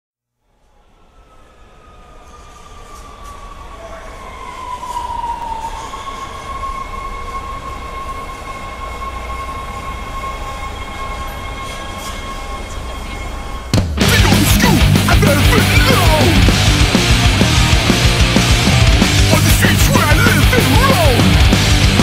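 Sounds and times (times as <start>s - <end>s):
train running noise: 0.5s - 22.0s
metallic wheel squeal: 5.8s - 13.8s
loud hardcore punk band: 13.7s - 22.0s.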